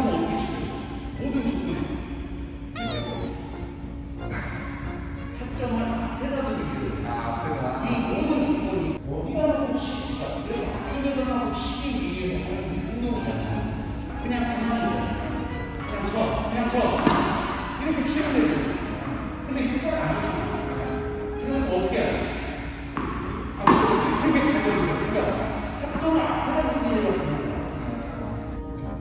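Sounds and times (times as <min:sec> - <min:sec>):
background music: 0:00.0 - 0:29.0
person speaking: 0:02.8 - 0:03.7
tennis balls hit or bouncing: 0:16.9 - 0:17.6, 0:22.8 - 0:24.3.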